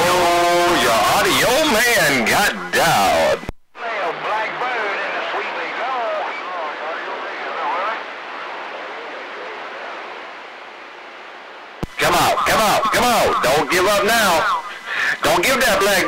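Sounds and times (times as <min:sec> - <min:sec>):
faint garbled radio voices: 0:00.0 - 0:16.0
radio static hiss: 0:00.0 - 0:16.0.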